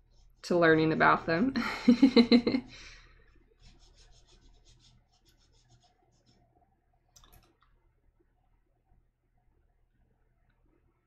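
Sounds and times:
brush pen scratching on paper: 0.0s - 1.6s, 3.5s - 6.5s.

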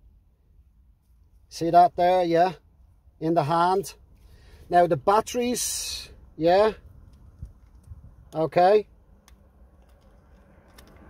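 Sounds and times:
light clicks of batteries handled: 6.8s - 8.5s, 9.2s - 11.0s.

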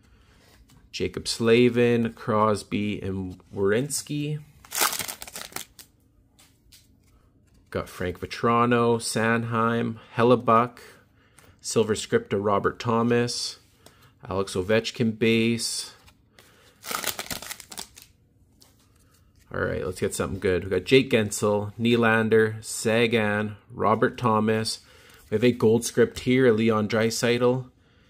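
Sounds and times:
cards rustling: 3.4s - 8.3s, 15.6s - 20.1s
foil wrapper crinkling and tearing: 4.6s - 5.9s, 16.8s - 18.1s.

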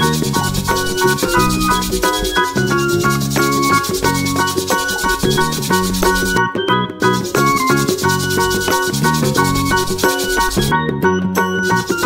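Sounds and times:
bright instrumental children's tune: 0.0s - 12.0s.

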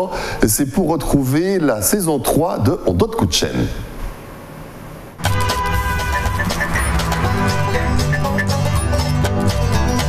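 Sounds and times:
tv intro jingle with horns: 5.2s - 10.0s.

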